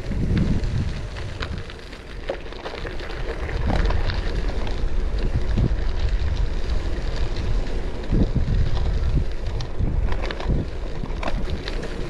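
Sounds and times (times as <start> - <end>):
tyres crunching on dirt path: 0.0 - 12.0
wind buffeting microphone: 0.0 - 12.0.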